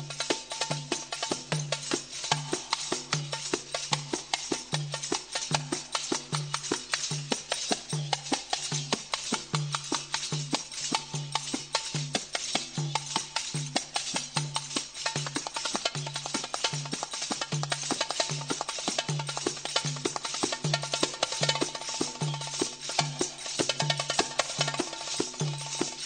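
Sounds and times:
darbuka drum solo: 0.0 - 26.0.

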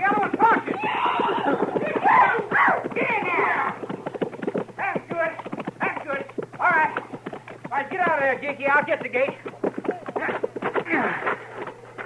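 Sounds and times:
people shouting: 0.0 - 3.8
horses whinnying: 0.0 - 5.1, 9.8 - 11.9
horses galloping: 0.0 - 12.0.

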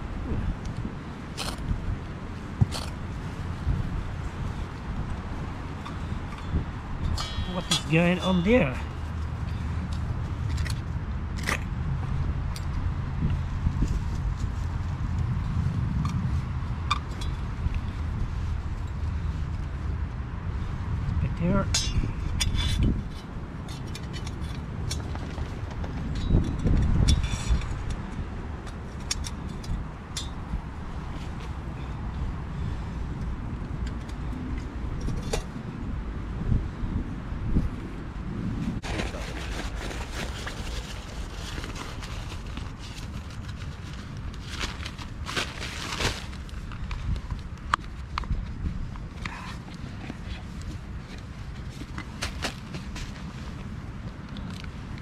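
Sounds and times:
steady low rumble: 0.0 - 55.0.

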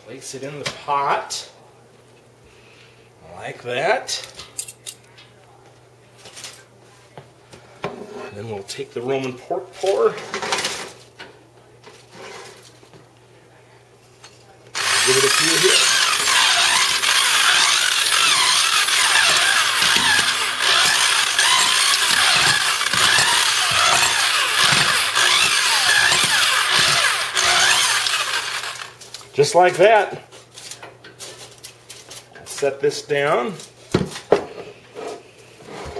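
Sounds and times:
low electrical hum: 0.0 - 35.9
metal attachment knocking and scraping pot: 14.8 - 28.7
power drill motor: 14.8 - 29.0.

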